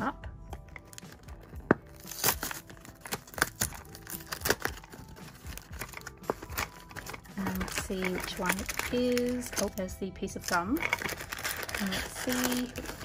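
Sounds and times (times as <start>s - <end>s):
cardboard tearing and crinkling: 0.6s - 9.8s, 10.4s - 13.0s.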